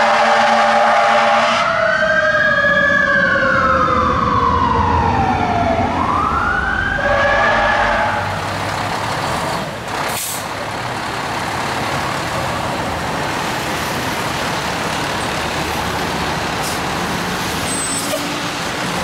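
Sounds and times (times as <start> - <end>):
diesel truck engine running: 7.9 - 19.0
air brake hiss: 10.1 - 10.5.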